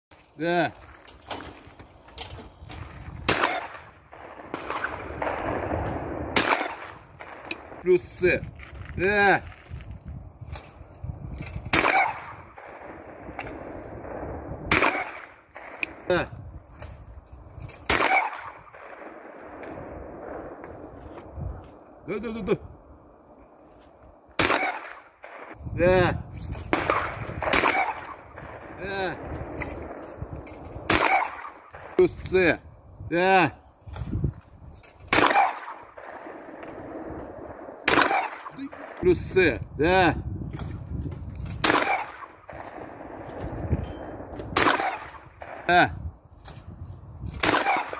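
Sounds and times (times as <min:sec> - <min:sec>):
loud shotgun shots: 0:03.2 - 0:08.0, 0:11.7 - 0:16.3, 0:17.9 - 0:20.6, 0:24.4 - 0:25.6, 0:26.7 - 0:30.0, 0:30.8 - 0:32.1, 0:35.1 - 0:39.4, 0:41.6 - 0:43.4, 0:44.1 - 0:45.9, 0:47.4 - 0:47.9.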